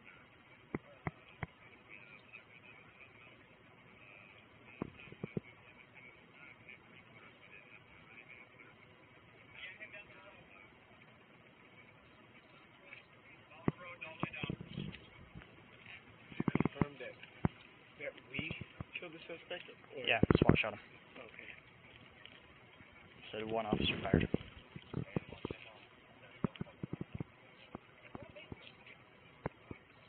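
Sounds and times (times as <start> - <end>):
faint indistinct voices: 0.0 - 30.0.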